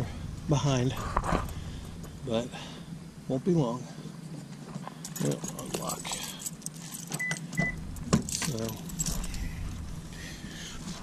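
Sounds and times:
keys jangling: 4.2s - 9.7s.

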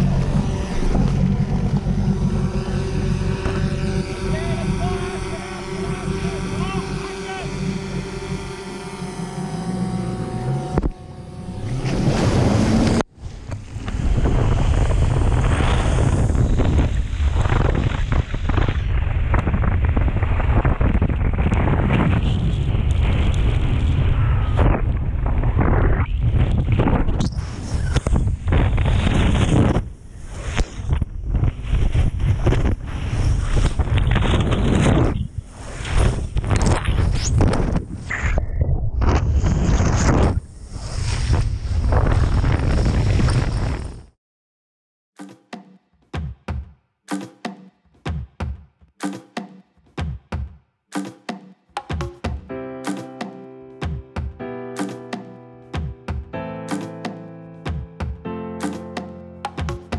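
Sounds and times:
boat engine humming: 0.0s - 12.9s
wind and spray on microphone: 13.8s - 44.1s.

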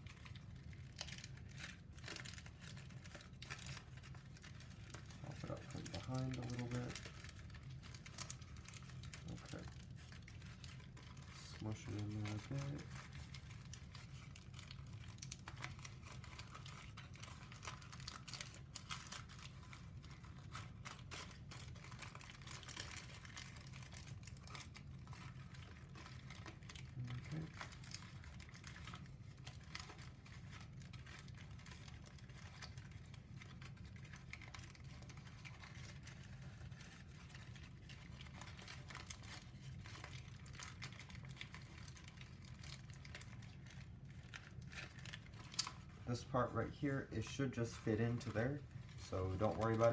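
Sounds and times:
paper rustling with faint crackles: 0.0s - 49.9s.

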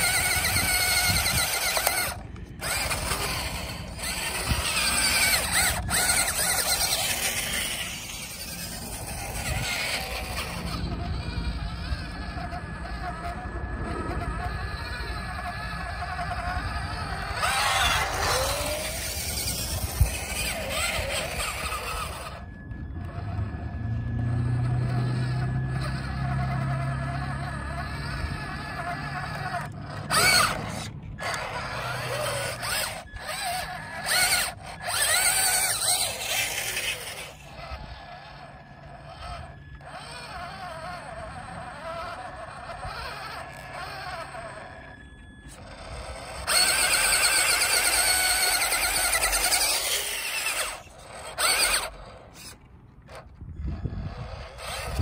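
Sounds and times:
toy truck motor whining: 0.0s - 55.0s.

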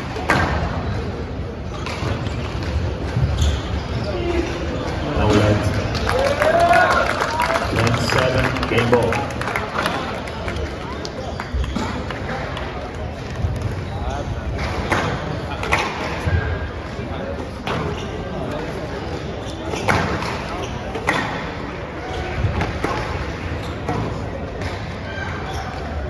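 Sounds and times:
murmuring spectators: 0.0s - 26.0s.

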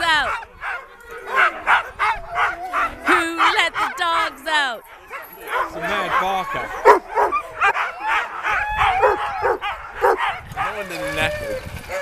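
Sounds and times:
sled dogs barking and yipping: 0.0s - 12.0s.

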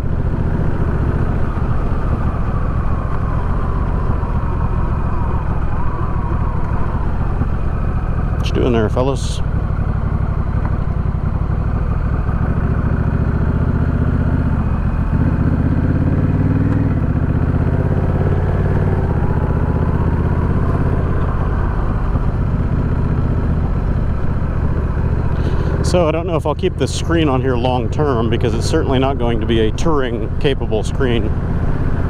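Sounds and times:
motorcycle engine riding: 0.0s - 32.0s.

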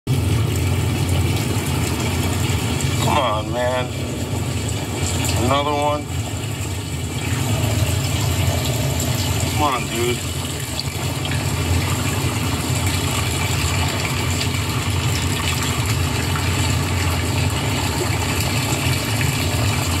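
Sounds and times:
pool pump humming: 0.1s - 20.0s
water churning: 0.1s - 20.0s.

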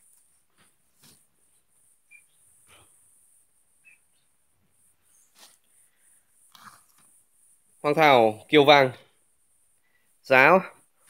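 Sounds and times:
faint rustles: 0.0s - 7.8s
tiny high chirps: 1.9s - 2.8s, 3.7s - 5.6s.

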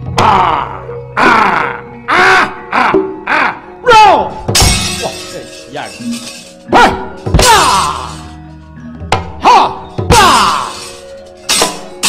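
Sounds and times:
gamelan music: 3.8s - 12.0s
metal plates crashing: 4.5s - 8.4s, 10.2s - 12.0s.

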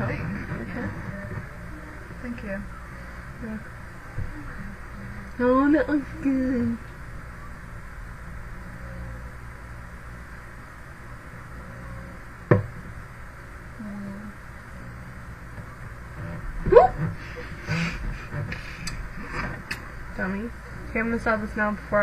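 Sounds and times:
microphone hiss: 0.0s - 22.0s.

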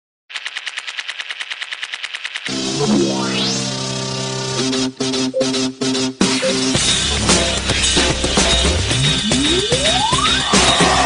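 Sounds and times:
rapid rattle of sharp clicks: 0.3s - 2.6s.

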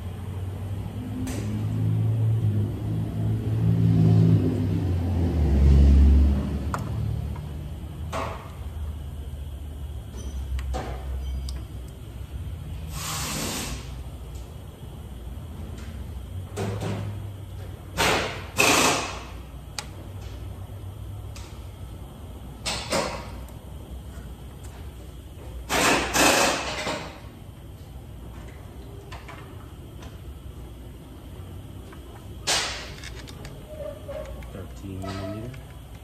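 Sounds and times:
short hissing bursts: 12.9s - 14.0s.

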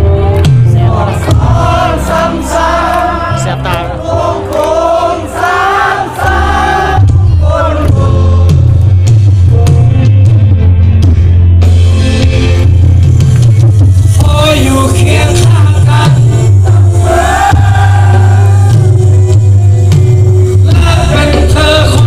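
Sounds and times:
people singing: 0.0s - 8.9s, 14.2s - 19.2s, 20.6s - 22.0s
live band music: 0.0s - 22.0s.

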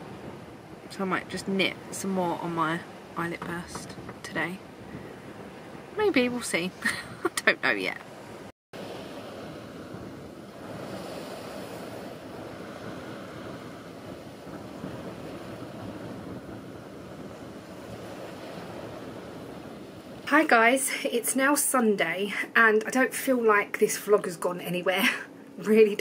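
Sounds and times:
wind on microphone: 0.0s - 20.6s
choppy water rushing: 0.0s - 21.0s.

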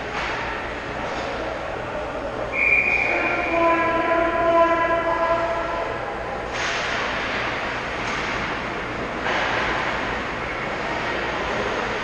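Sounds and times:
high whistle blast: 2.5s - 3.7s.

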